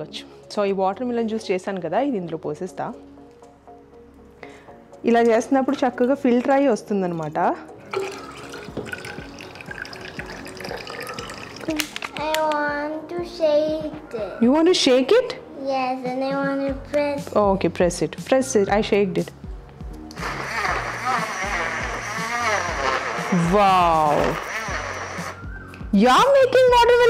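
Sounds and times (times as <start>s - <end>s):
music: 0.0s - 27.0s
juice pouring and splashing: 7.8s - 12.2s
blender motor running: 20.2s - 25.4s.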